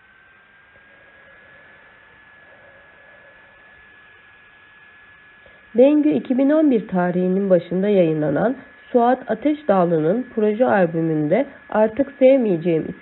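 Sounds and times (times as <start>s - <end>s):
high-pitched electrical whine: 0.0s - 13.0s
woman speaking: 5.8s - 13.0s.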